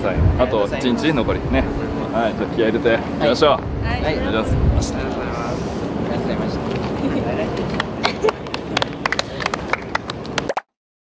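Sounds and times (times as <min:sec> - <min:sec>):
people clapping: 0:07.5 - 0:10.7.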